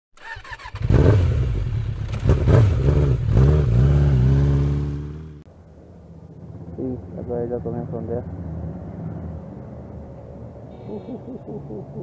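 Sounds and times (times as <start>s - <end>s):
motorcycle engine revving: 0.2s - 5.5s.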